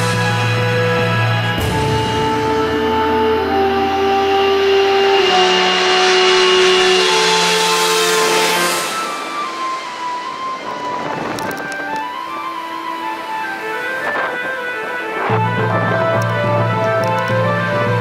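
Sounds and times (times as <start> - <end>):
background music with held notes: 0.0 - 18.0
jet airliner passing overhead: 0.8 - 18.0.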